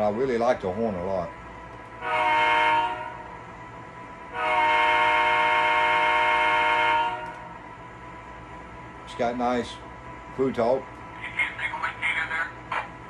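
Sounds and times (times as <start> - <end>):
model train diesel horn blast: 2.0 - 3.4, 4.3 - 7.6.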